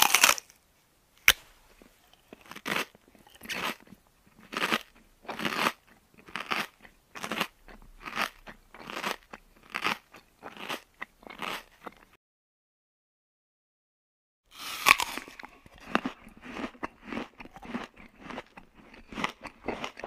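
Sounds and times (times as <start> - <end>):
child chewing: 1.7 - 12.2, 14.5 - 20.0.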